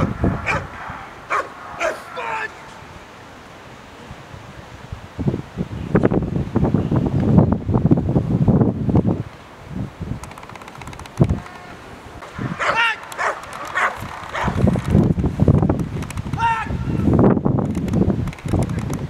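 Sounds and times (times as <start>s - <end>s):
dog barking: 0.0s - 2.3s, 12.6s - 14.6s
wind rumble on microphone: 0.0s - 3.2s, 3.8s - 19.0s.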